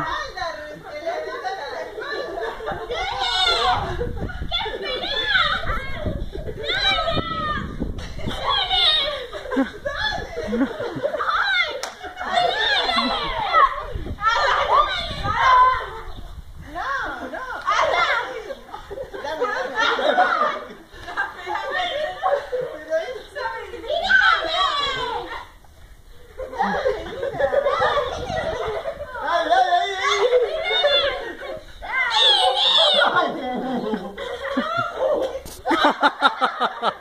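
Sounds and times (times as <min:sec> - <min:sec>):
people laughing: 0:00.0 - 0:16.0, 0:16.9 - 0:25.6, 0:26.2 - 0:37.0
children shouting and squealing: 0:00.0 - 0:37.0.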